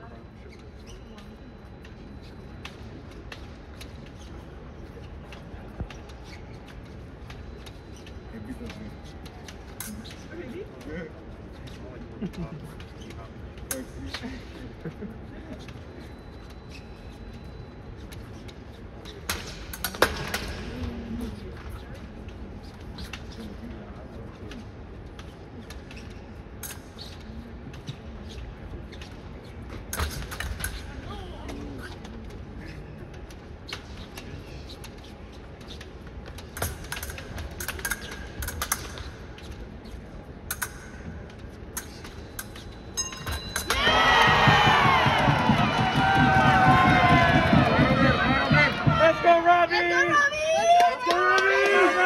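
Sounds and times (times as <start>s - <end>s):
blades clicking and clinking: 41.8s - 44.0s
spectators cheering and shouting: 43.7s - 52.0s.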